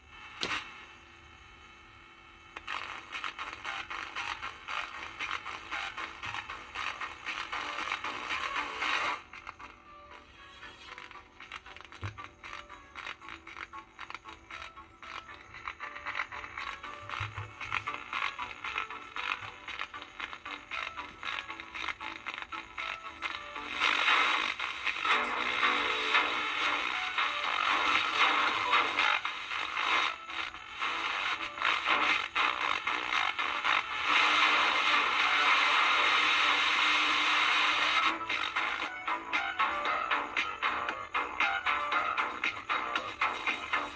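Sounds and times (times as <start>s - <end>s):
music through small radio speaker: 0.0s - 43.9s.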